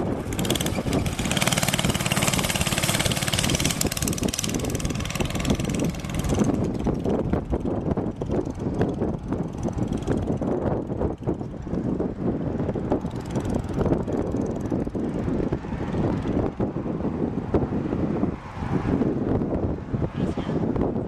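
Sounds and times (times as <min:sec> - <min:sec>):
go-kart engine passing by: 0:00.0 - 0:11.4.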